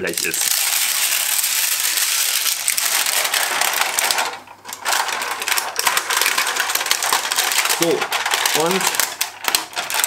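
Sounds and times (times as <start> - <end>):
metal sheet crackling and rattling: 0.0 - 10.0.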